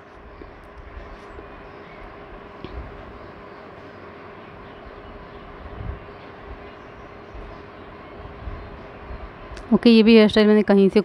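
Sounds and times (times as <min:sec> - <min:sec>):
faint constant hum: 0:00.0 - 0:11.0
low background rumble: 0:00.0 - 0:11.0.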